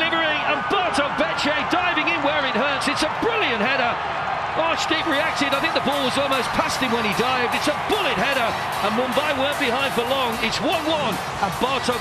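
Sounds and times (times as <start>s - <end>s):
man commentating: 0.0s - 12.0s
match crowd noise: 0.0s - 12.0s.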